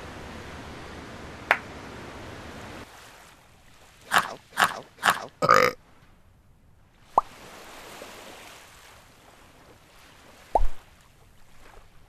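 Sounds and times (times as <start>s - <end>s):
man clearing throat: 5.4s - 5.8s.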